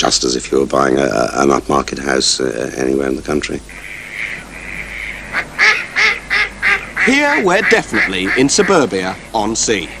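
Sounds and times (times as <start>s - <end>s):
duck quacking: 3.7s - 10.0s.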